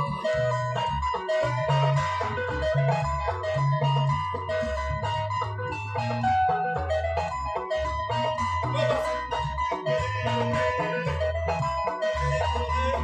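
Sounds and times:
electric bass line: 0.0s - 13.0s
electric guitar melody: 0.0s - 13.0s.

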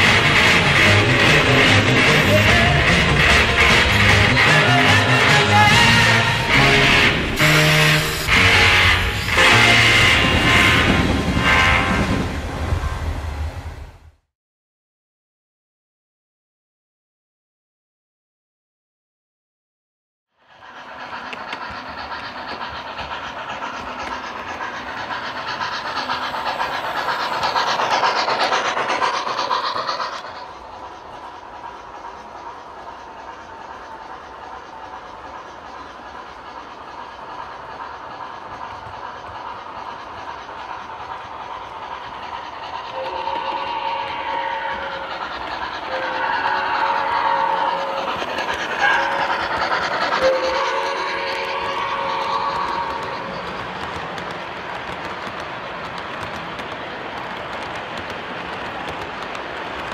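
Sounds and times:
model train wheels clicking: 0.0s - 11.9s, 20.5s - 59.9s
train horn blasts: 0.8s - 12.4s.

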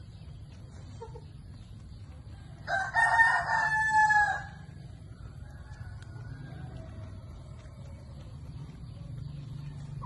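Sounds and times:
rooster crowing: 2.6s - 7.6s.

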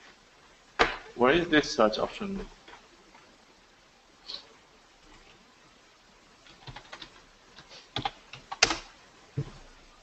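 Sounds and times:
typing on computer keyboard: 6.4s - 8.9s.

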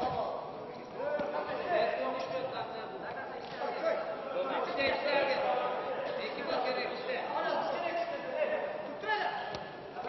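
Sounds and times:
men calling out in a hall: 0.0s - 10.0s.

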